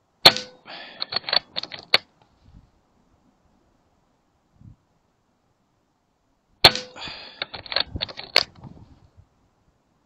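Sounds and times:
metallic clicks and rattles: 0.3s - 2.1s, 6.8s - 8.6s
air rifle shot: 6.6s - 7.2s.

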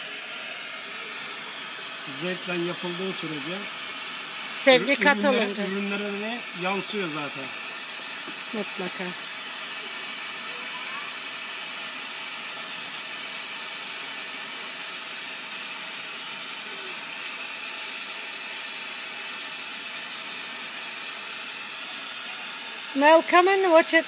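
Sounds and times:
torch flame hissing: 0.0s - 24.0s.

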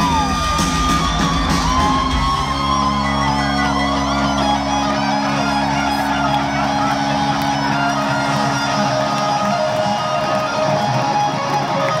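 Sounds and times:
electric guitar solo: 0.0s - 12.0s.

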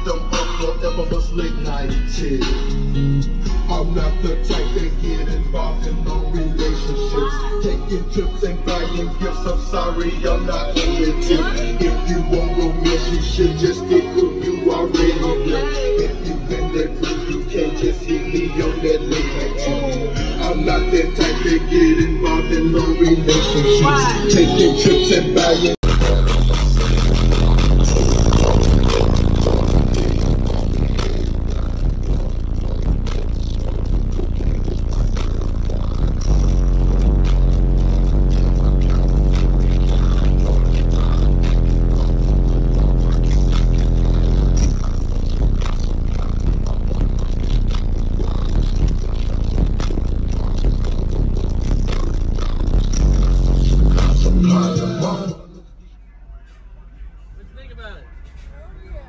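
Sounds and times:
deep bass music through subwoofers: 0.0s - 59.0s.

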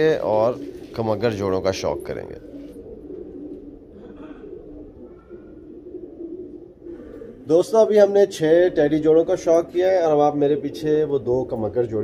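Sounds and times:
pigeons cooing: 0.0s - 12.0s.

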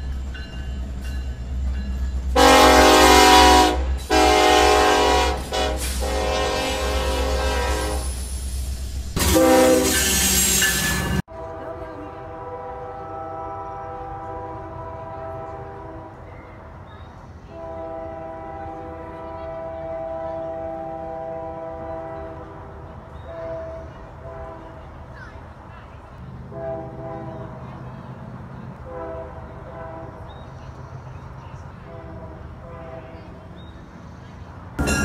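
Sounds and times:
train rumbling: 0.0s - 35.0s
locomotive air horn chord: 2.4s - 8.1s, 9.2s - 16.3s, 17.5s - 24.8s, 26.5s - 27.6s, 28.8s - 30.3s.

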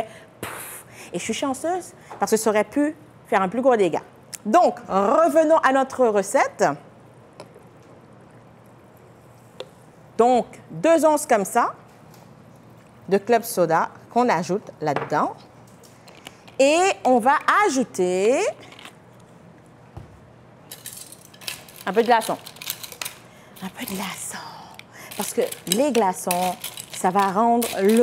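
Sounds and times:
ice cubes clinking in metal bucket: 20.7s - 24.2s, 25.1s - 28.0s
metal tongs clicking: 24.7s - 28.0s.

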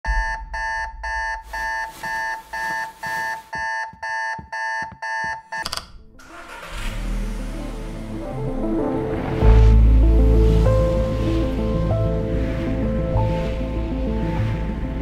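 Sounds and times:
electronic alarm beeping: 0.0s - 5.8s
low music: 5.8s - 15.0s.

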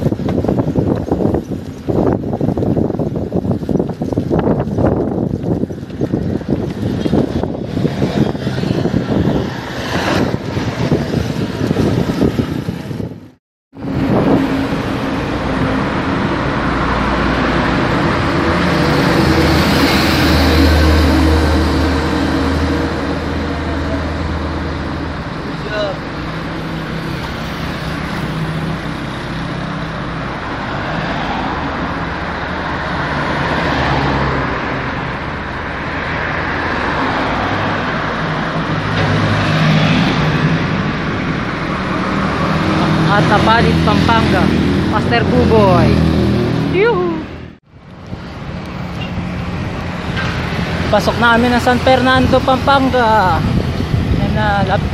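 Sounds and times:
highway traffic passing: 0.0s - 54.9s.

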